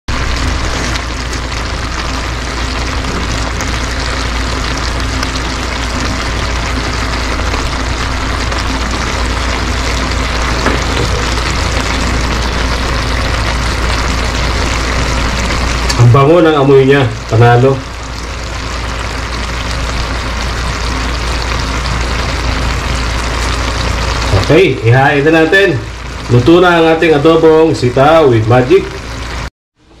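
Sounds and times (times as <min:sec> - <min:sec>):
low hum: 0:00.1 - 0:26.5.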